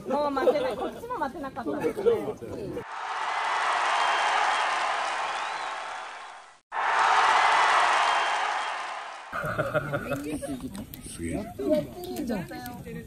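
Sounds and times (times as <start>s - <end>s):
crowd applause and cheering: 2.8s - 9.9s.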